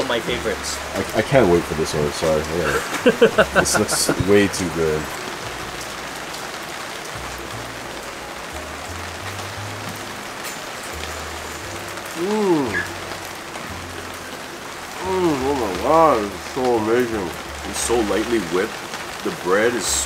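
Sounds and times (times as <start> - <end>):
rain on plastic umbrella: 0.0 - 20.0.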